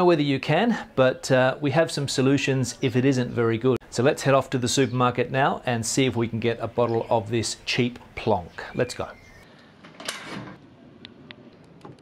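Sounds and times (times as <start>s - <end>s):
lock scraping: 9.8s - 10.6s.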